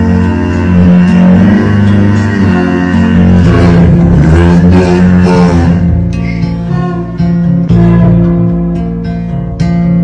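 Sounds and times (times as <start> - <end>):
held bass notes: 0.0 - 10.0
plucked string instruments: 0.0 - 10.0.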